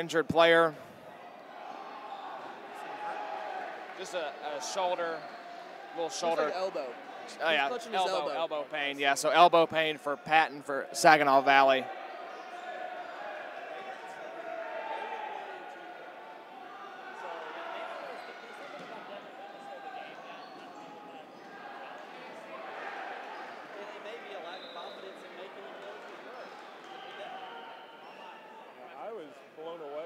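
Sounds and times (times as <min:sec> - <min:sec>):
many voices talking: 0:00.0 - 0:30.0.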